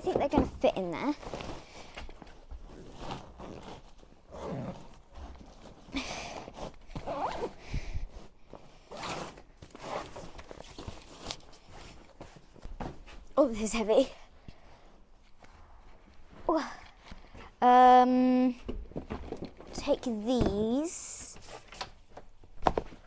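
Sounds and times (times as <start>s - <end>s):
zip being pulled: 2.7s - 5.1s, 6.4s - 7.6s, 8.8s - 10.2s
rustling and knocking in bag: 18.6s - 20.8s.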